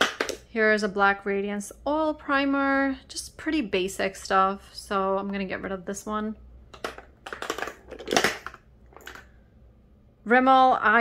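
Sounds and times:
plastic tubes clicking and clattering: 0:00.0 - 0:00.4, 0:06.7 - 0:09.3.

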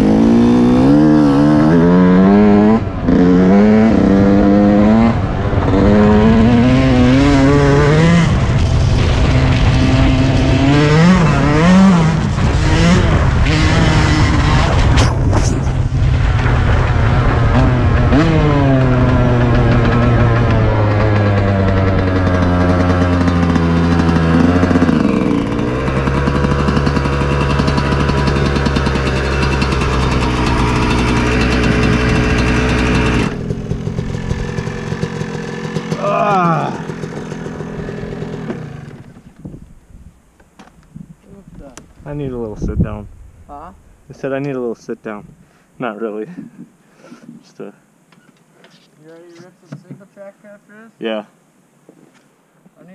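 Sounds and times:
two-stroke dirt bike engine: 0:00.0 - 0:39.6.

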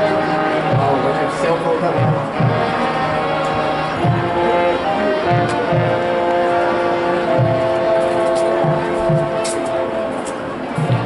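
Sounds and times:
marching band brass chords: 0:00.0 - 0:11.0.

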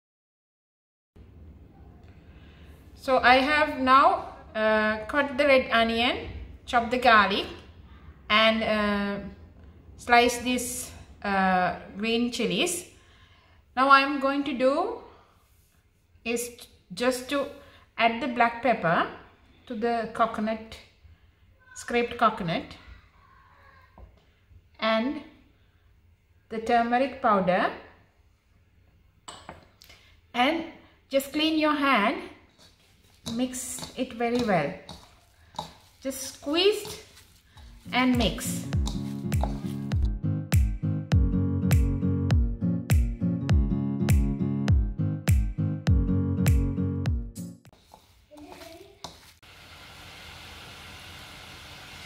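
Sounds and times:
spoon tapping ceramic bowl: 0:38.7 - 0:39.7
water boiling in a saucepan: 0:49.0 - 0:52.0.

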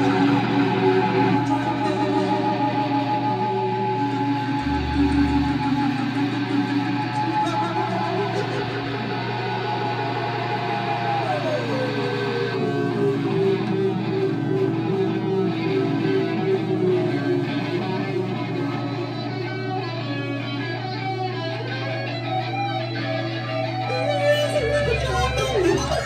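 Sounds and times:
electronic drone tones: 0:00.0 - 0:26.0
held electric guitar notes: 0:00.0 - 0:26.0.

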